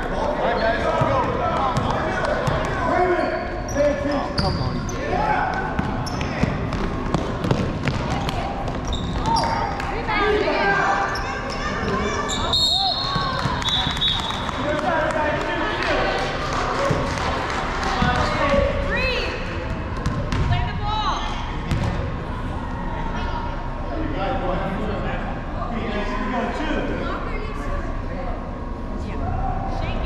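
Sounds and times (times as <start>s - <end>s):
basketball bouncing on wood floor: 5.8s - 8.4s
shoes squeaking: 7.9s - 9.8s.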